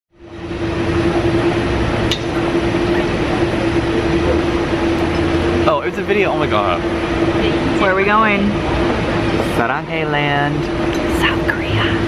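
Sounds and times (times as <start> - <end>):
steady humming background noise: 0.2 - 12.0.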